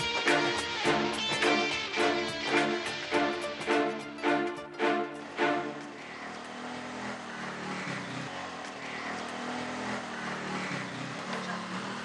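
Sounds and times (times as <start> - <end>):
musical chord: 0.0 - 6.1
road traffic noise: 0.0 - 12.0
vehicle engine running: 0.0 - 12.0.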